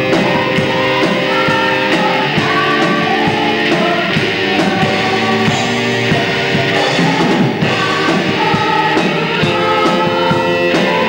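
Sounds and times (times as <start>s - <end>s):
choir singing long held notes: 0.0s - 11.0s.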